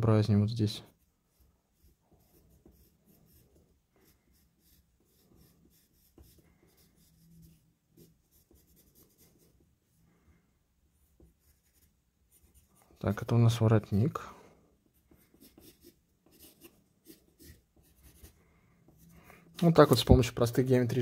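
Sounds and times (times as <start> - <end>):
pencil scratching on paper: 0.8 - 9.6, 11.0 - 13.0, 14.9 - 19.3.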